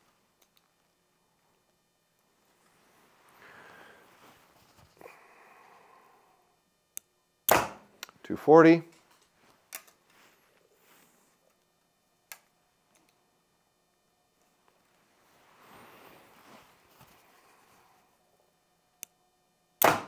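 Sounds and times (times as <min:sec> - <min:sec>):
soft rustle of bow handling: 0:04.0 - 0:05.0, 0:09.0 - 0:11.6, 0:14.5 - 0:18.1.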